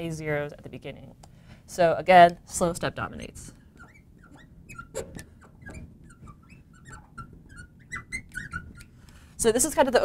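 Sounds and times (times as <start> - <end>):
marker squeaking on glass: 3.1 - 9.2.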